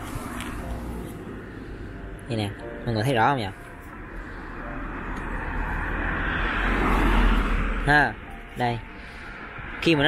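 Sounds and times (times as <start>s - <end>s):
passing vehicle rumble: 0.0s - 10.0s.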